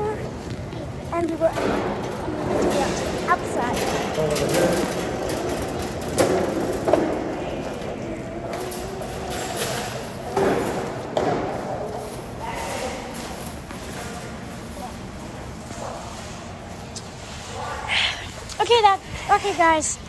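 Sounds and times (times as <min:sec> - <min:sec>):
indistinct voices: 0:00.0 - 0:20.0.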